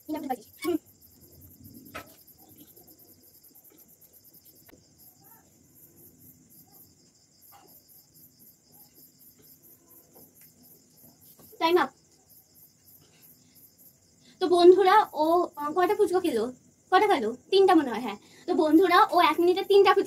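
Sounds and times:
crickets chirping: 0.0 - 20.0.

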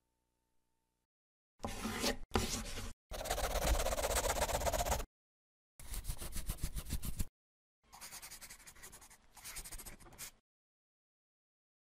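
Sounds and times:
pen scribbling on paper: 3.1 - 5.0, 7.9 - 10.4.

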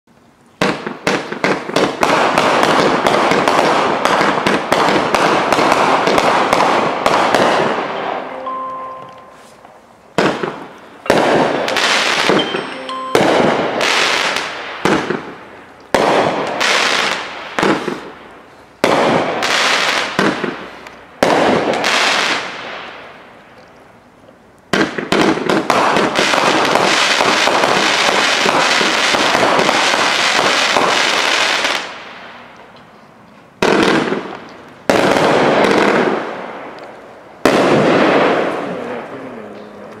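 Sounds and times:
fireworks bursting with crackle: 0.1 - 40.0.

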